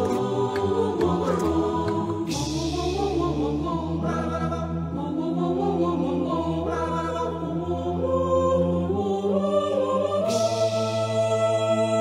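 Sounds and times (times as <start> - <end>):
a cappella choir singing: 0.0 - 12.0.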